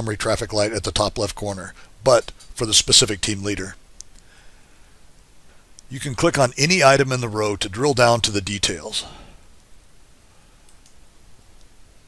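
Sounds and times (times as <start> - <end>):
low room hiss: 0.0 - 12.0
computer mouse clicks: 10.6 - 11.0.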